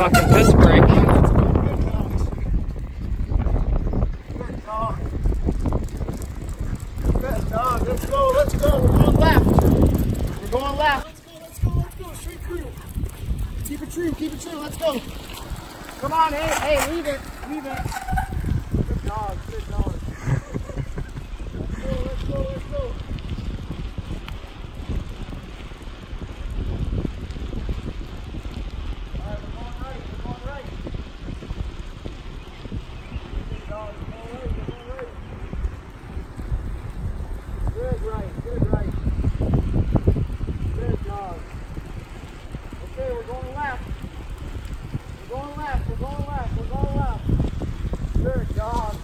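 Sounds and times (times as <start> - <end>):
wheels rolling on asphalt: 0.0 - 49.0
wind buffeting microphone: 0.0 - 49.0.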